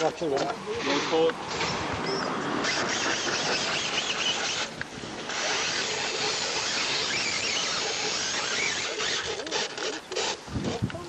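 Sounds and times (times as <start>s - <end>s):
toy car electric motor whining: 1.6s - 11.0s.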